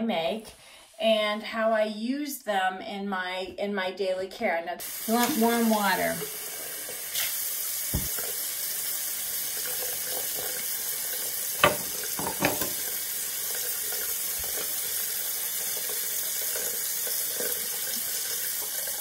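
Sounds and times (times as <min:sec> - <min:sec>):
tap running into basin: 0:07.9 - 0:08.5, 0:09.5 - 0:19.0.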